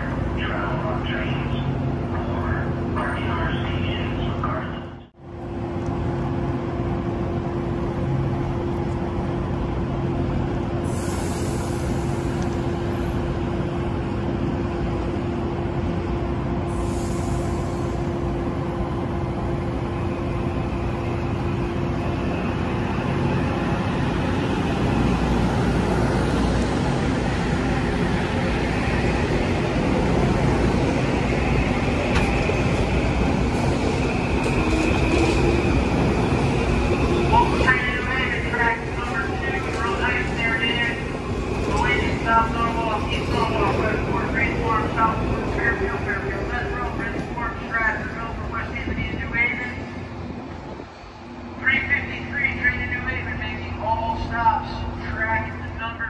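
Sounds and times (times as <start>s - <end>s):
train wheels rumbling: 0.0s - 55.8s
train high whine: 0.0s - 56.0s.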